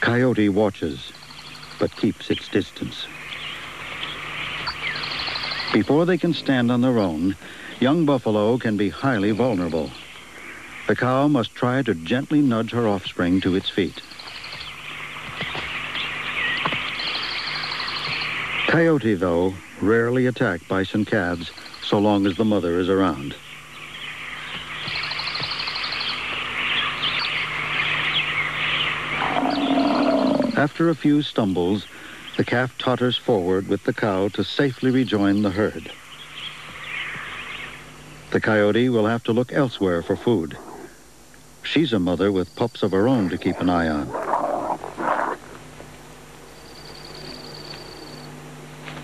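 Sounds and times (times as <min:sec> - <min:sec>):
songbirds chirping: 0:00.0 - 0:49.0
rapid high bird trill: 0:03.1 - 0:07.8, 0:13.8 - 0:18.8, 0:21.4 - 0:30.6, 0:46.4 - 0:48.4
coyote pups growling: 0:29.1 - 0:30.7, 0:39.9 - 0:41.1, 0:43.2 - 0:45.7
low rumbling growl: 0:29.2 - 0:30.6.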